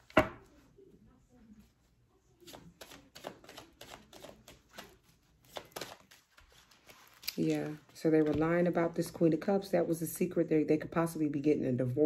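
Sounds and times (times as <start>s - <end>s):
cards being shuffled: 2.4s - 8.6s.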